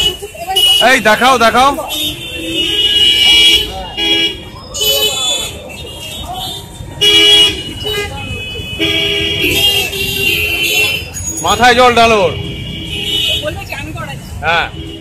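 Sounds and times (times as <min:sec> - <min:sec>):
people's voices: 0:00.0 - 0:15.0
vehicle horns honking: 0:00.0 - 0:15.0.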